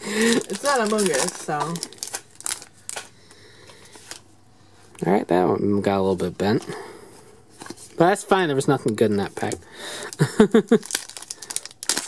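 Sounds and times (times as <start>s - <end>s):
handling of trading cards: 0.2s - 4.3s.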